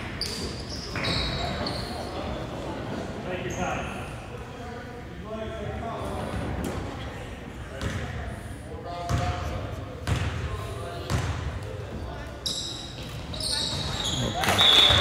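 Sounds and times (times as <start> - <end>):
sneaker squeaks on court: 0.1 - 2.1, 12.4 - 15.0.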